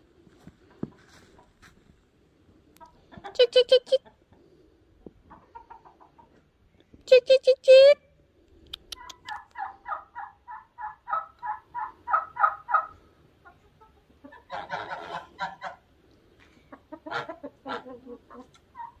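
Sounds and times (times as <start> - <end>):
chickens clucking: 0.2 - 1.8, 2.5 - 6.9, 8.7 - 19.0
turkey gobble: 8.8 - 15.8, 16.7 - 19.0.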